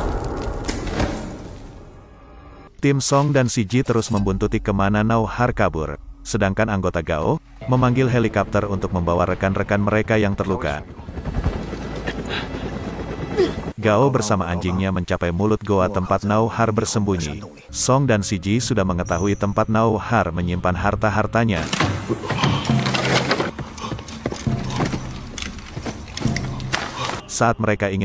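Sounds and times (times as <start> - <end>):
helicopter rotor and engine: 8.7 - 14.8.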